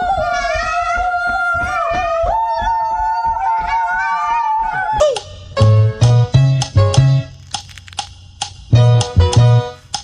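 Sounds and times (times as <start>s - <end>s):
people shrieking: 0.0s - 5.1s.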